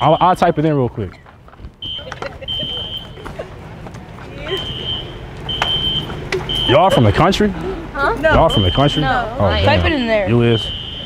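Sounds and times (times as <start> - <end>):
low traffic rumble: 0.0 - 11.0
high-pitched electronic beeps: 4.7 - 7.0, 8.2 - 11.0.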